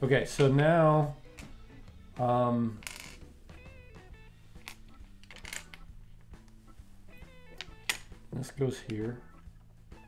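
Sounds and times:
quiet guitar music: 0.0s - 10.0s
plastic bricks clicking: 4.6s - 5.8s.

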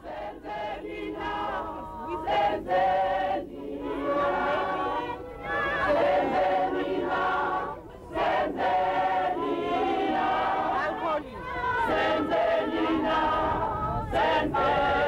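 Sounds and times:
crowd singing in chorus: 0.0s - 15.0s.

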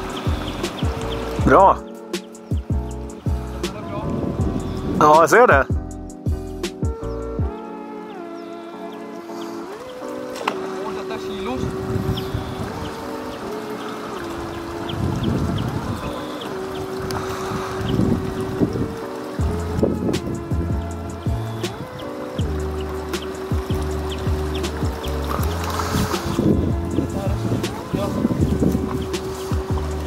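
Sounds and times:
background music with held notes: 0.0s - 30.0s.

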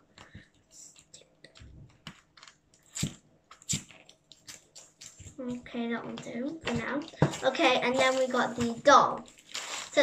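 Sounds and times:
small crackles and clicks: 0.1s - 10.0s
sticky tape peeling off plastic: 2.4s - 5.4s.

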